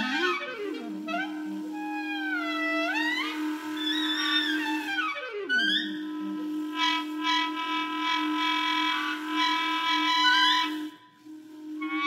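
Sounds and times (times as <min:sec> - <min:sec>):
higher clarinet note: 0:00.0 - 0:12.0
low held clarinet note: 0:00.0 - 0:12.0.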